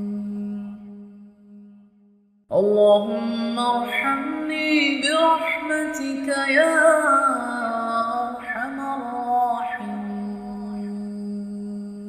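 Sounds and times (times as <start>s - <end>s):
person chanting long held notes: 0.0s - 1.6s, 2.5s - 12.0s.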